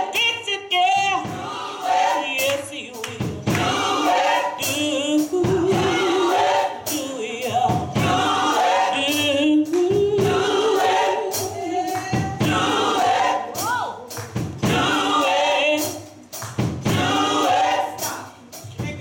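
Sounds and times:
choir singing: 0.0s - 18.7s
sharp percussive beats: 0.0s - 19.0s.

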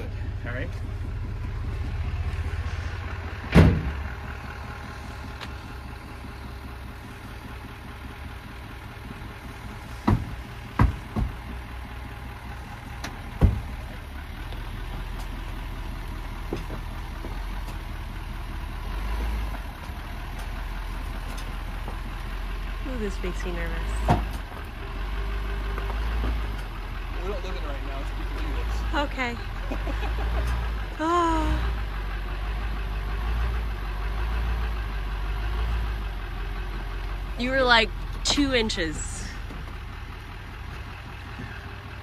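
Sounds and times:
diesel engine droning: 0.0s - 42.0s
sharp metal clunks: 3.5s - 4.0s.

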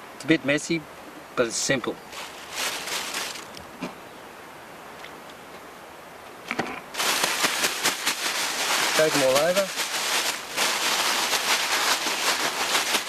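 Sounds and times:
plastic bag crinkling: 2.1s - 3.6s, 6.9s - 13.0s.

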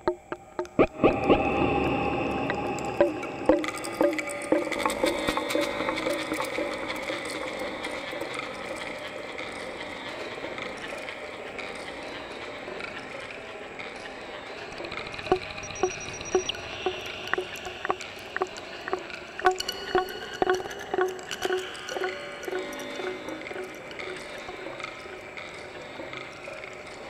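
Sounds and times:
synth wash: 14.7s - 24.8s.

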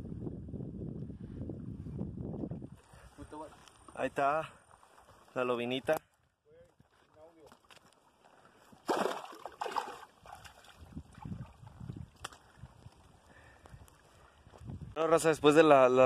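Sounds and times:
water splashing and sloshing: 4.6s - 5.4s, 7.4s - 13.3s.

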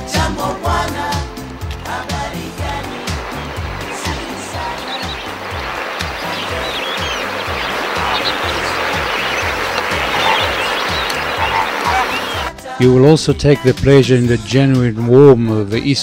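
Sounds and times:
flamingos honking: 1.8s - 12.5s.

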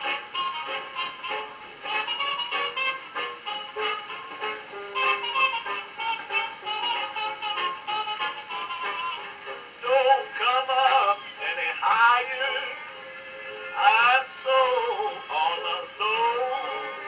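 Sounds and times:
record surface hiss: 0.0s - 17.0s
man singing with orchestra: 9.8s - 17.0s.

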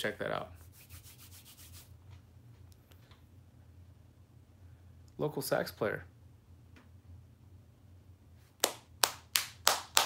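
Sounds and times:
steady low hum: 0.0s - 10.0s
rapid scratching strokes: 0.6s - 2.0s.

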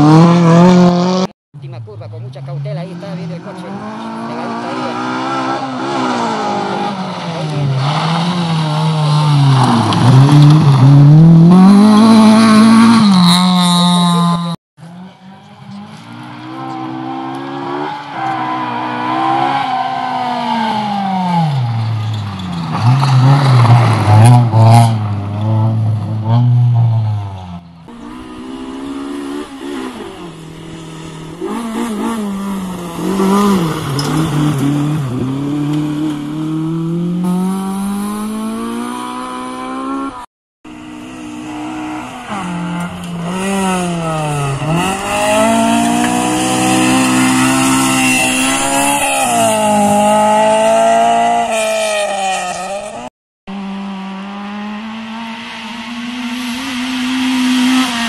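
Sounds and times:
rally car engines revving: 0.0s - 58.0s.

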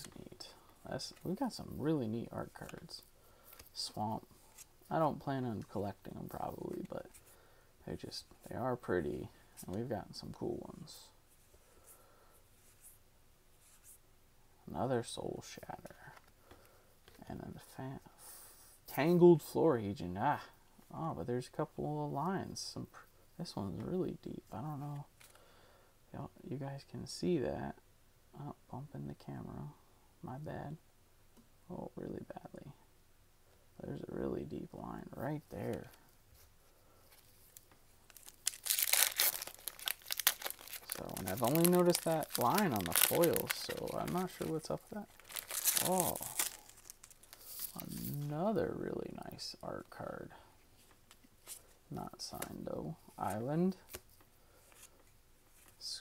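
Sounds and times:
foil wrapper crinkling and tearing: 37.5s - 48.3s.

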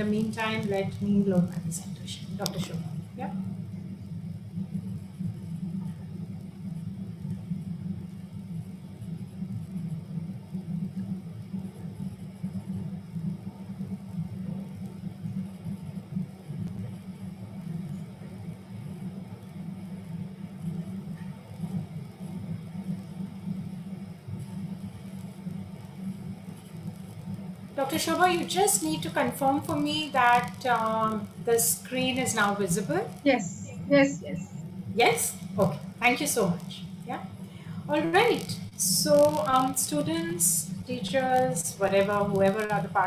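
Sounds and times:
low background rumble: 0.0s - 43.0s.

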